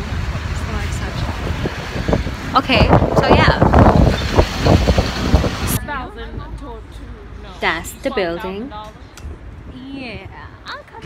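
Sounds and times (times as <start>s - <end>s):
traffic low rumble: 0.0s - 11.0s.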